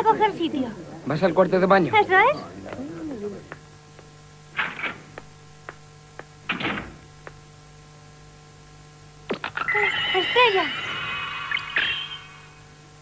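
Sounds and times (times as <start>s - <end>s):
faint steady hum: 0.0s - 13.0s
shimmering sparkle chime: 9.6s - 12.6s.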